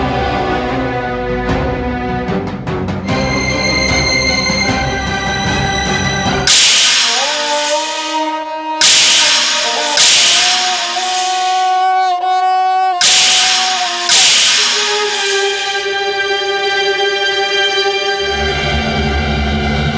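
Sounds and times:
loud noisy musical hits: 3.0 - 11.8, 13.0 - 16.7
sustained score tones: 3.1 - 12.2, 13.0 - 18.4.

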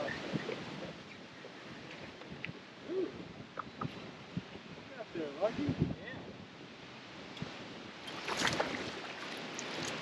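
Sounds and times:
wind noise on microphone: 0.0 - 10.0.

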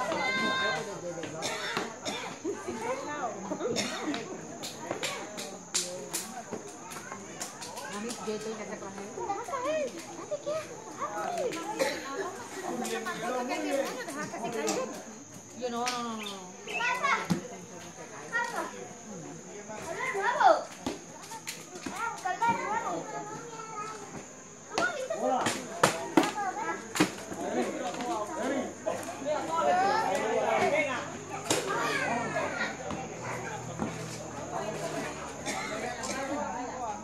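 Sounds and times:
children shouting and cheering: 0.0 - 1.0, 16.6 - 17.4, 21.4 - 25.4, 29.5 - 33.6
girls calling out and chattering: 0.0 - 37.0.

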